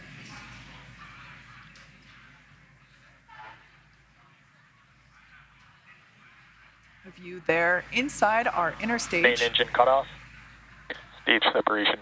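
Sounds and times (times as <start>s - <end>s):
faint background noise: 0.0s - 12.0s.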